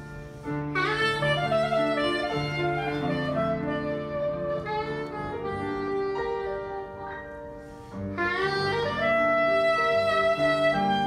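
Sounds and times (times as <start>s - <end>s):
grand piano accompaniment: 0.0s - 11.0s
soprano saxophone melody: 0.0s - 11.0s.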